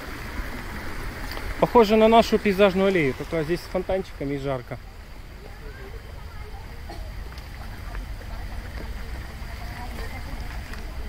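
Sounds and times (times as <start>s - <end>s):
faint distant voices: 0.5s - 11.0s.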